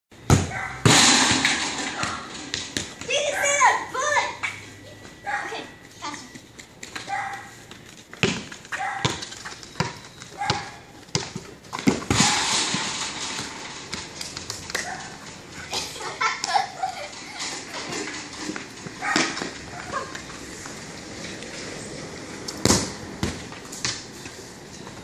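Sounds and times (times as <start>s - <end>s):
football dribbled and kicked on asphalt: 0.2s - 1.1s, 2.0s - 3.3s, 6.2s - 15.1s, 18.7s - 20.8s, 22.3s - 25.0s
children calling: 3.1s - 6.3s.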